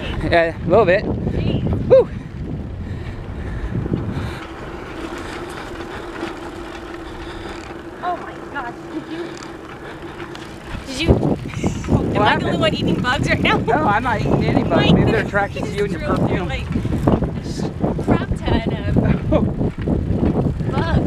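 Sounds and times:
bicycle tyres rolling over dirt: 0.0 - 21.0
steady hum: 0.0 - 21.0
wind on microphone: 0.0 - 21.0.

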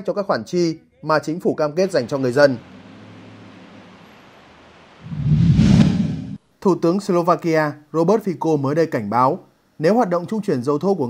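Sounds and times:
loud whoosh with low rumble: 5.0 - 6.4.

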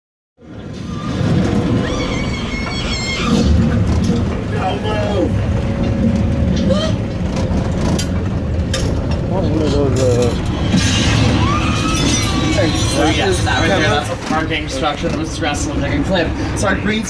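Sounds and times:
passengers' voices: 0.4 - 17.0
tram rumble: 0.4 - 17.0.

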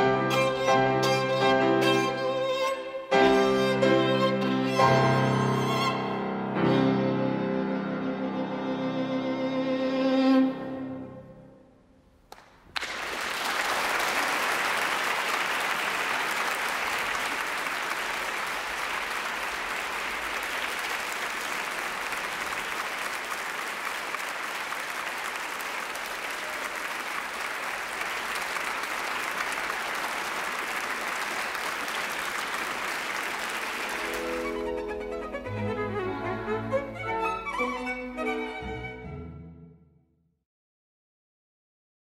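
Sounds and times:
violin: 0.0 - 11.6, 33.9 - 39.7
audience applauding: 12.3 - 35.5.

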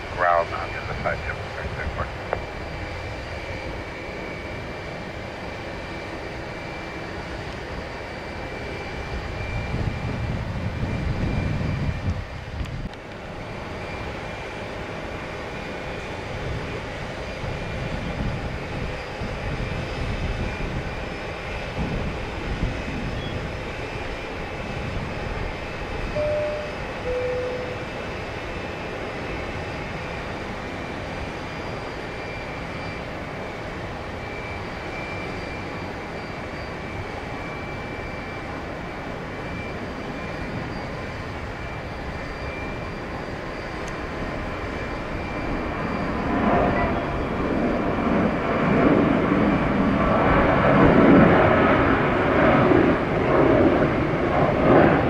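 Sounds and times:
distant jet engines whining: 0.0 - 55.0
wind rumbling on microphone: 8.7 - 13.8, 16.0 - 28.0.

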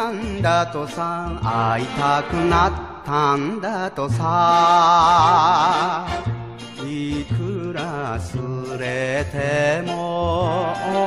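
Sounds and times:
band accompaniment with bass: 0.0 - 11.0
man singing with vibrato: 0.0 - 11.0.

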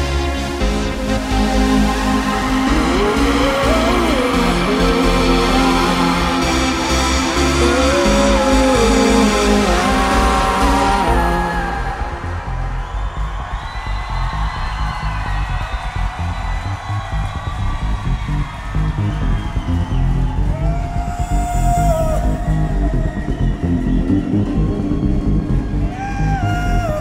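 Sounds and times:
pulsing synth bass: 0.0 - 27.0.

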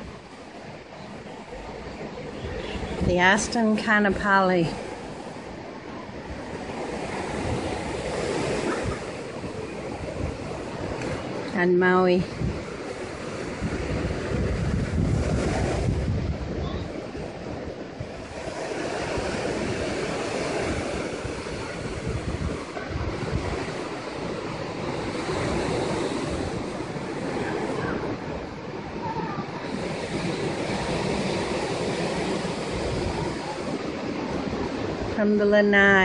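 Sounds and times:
ocean surf washing in: 0.0 - 36.0
wind buffeting microphone: 0.0 - 36.0.

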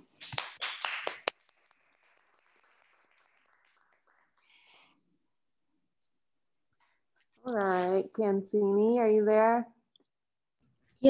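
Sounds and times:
hand clapping: 0.0 - 5.0.

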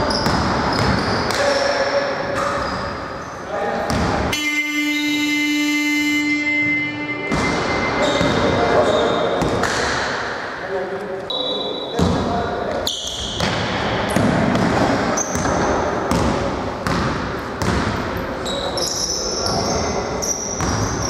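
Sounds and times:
ball bouncing on hardwood court: 0.0 - 1.6, 3.8 - 4.3, 6.6 - 10.2, 11.9 - 18.2, 19.4 - 21.0
players' voices in echoing gym: 0.0 - 21.0
scoreboard buzzer: 4.3 - 8.5.

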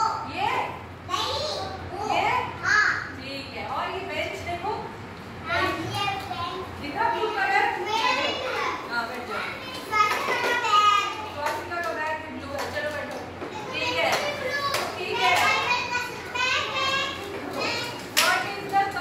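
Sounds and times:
young children talking and calling: 0.0 - 3.2, 5.0 - 19.0.

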